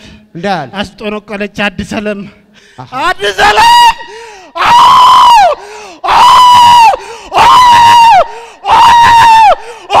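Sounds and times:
man screaming into microphone: 3.2 - 10.0.

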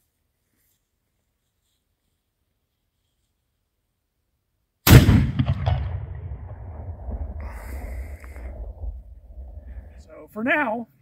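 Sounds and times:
cannon boom: 4.9 - 10.1
low rumble: 5.1 - 10.1.

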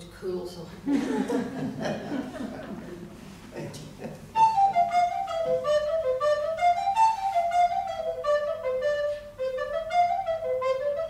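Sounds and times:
recorder playing folk tune: 4.3 - 11.0.

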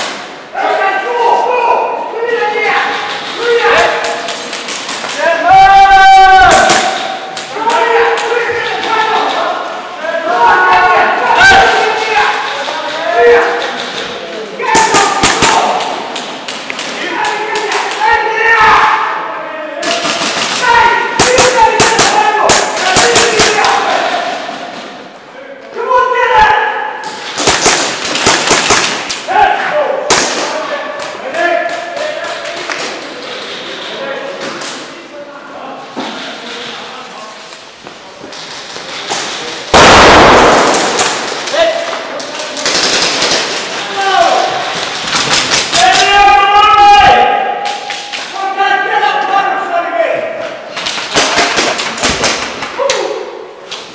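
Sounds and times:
players shouting: 0.1 - 32.9, 39.6 - 51.8
airsoft guns firing in bursts: 19.8 - 20.6, 27.2 - 29.2, 39.7 - 41.6, 42.6 - 43.7.

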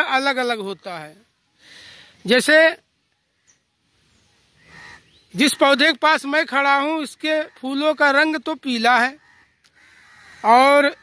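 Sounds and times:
soft breath: 1.5 - 2.2.

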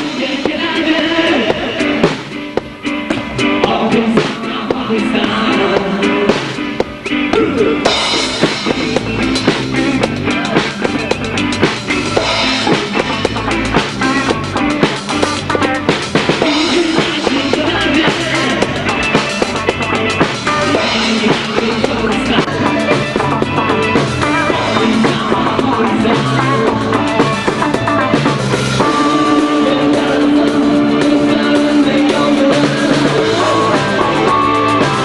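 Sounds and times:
band music: 0.0 - 35.0
bass drum and snare beat: 0.0 - 35.0.

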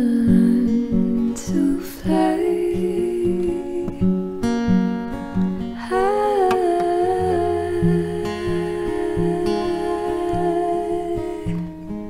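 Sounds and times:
acoustic guitar picked softly: 0.0 - 12.0
woman humming: 5.8 - 11.8.

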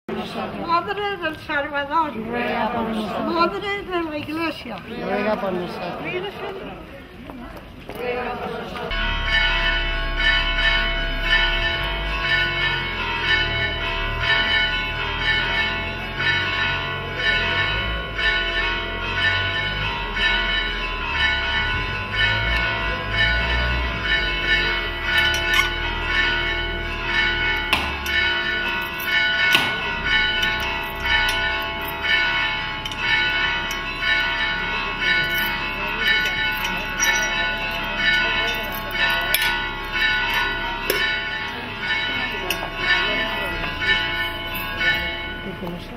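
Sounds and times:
church bells ringing: 7.9 - 45.9.

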